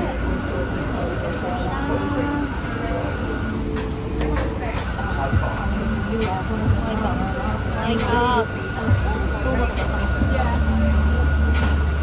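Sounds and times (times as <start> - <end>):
faint voices: 0.0 - 12.0
low engine rumble: 0.0 - 12.0.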